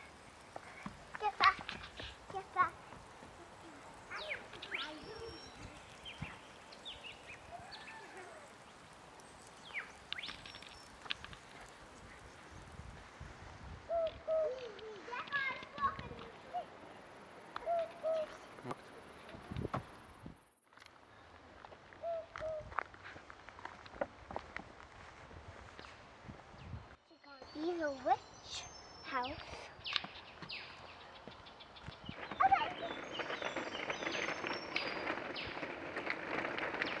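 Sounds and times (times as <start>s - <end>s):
birds chirping and trilling: 0.0s - 20.6s, 27.2s - 36.1s
pigeon cooing: 13.9s - 15.1s, 17.6s - 19.5s, 22.0s - 22.7s.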